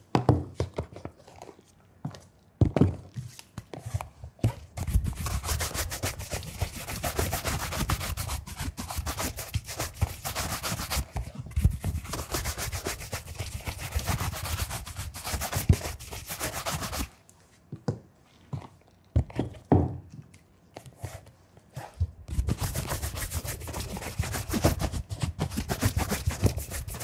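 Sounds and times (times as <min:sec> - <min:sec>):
shoe brush strokes on leather: 0:25.6 - 0:27.0.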